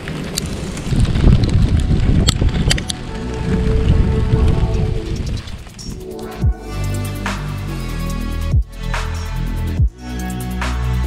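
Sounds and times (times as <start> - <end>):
wind rumbling on microphone: 0.0 - 8.0
background music: 2.7 - 11.0.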